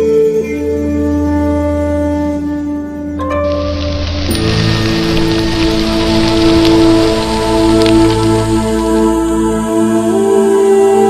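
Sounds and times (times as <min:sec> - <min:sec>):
ambient drone music: 0:00.0 - 0:11.0
faint crackles: 0:03.2 - 0:09.1
steady hiss: 0:03.4 - 0:09.3.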